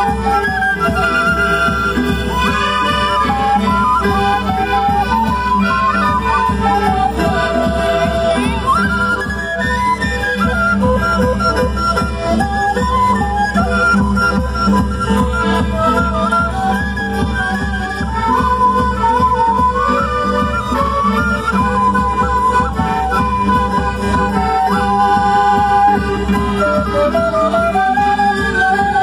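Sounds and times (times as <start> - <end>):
melody instruments playing a tune: 0.0 - 29.0.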